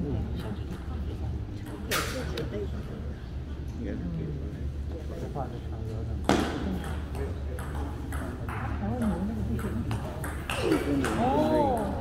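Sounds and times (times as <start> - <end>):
ball bouncing on table: 6.2 - 12.0
table tennis ball hits: 6.2 - 12.0.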